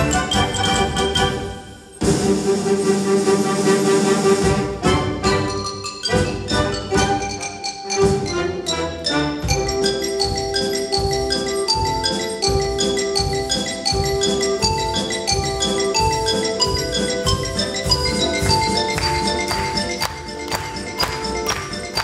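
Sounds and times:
xylophone solo: 0:00.0 - 0:02.0, 0:04.8 - 0:22.0
wind band sustained notes: 0:00.0 - 0:05.6.

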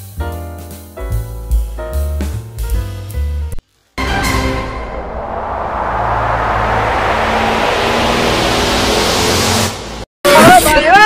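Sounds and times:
low hum: 0:04.0 - 0:10.1
rushing noise: 0:04.0 - 0:10.1.

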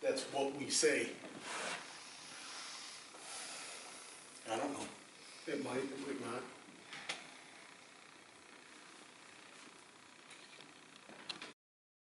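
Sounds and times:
faint room tone hiss: 0:00.0 - 0:11.6.

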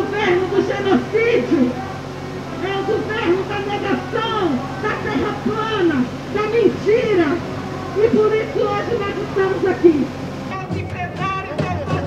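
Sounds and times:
loud singing or chanting with music: 0:00.0 - 0:12.0
voice over loudspeakers: 0:00.0 - 0:12.0.

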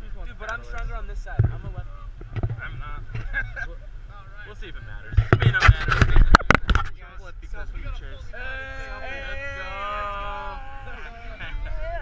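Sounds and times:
knocks and rubbing on microphone: 0:01.2 - 0:03.5, 0:05.0 - 0:07.0
people yelling together: 0:08.3 - 0:12.0.

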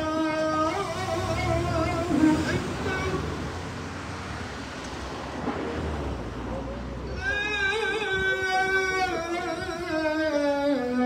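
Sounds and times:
city street rumble: 0:00.0 - 0:11.0
wind on microphone: 0:07.4 - 0:11.0.

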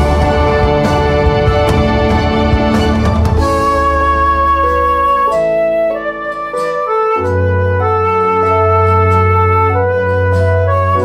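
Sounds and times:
deep bass note: 0:00.0 - 0:11.0
slow melody of held notes: 0:00.0 - 0:11.0.

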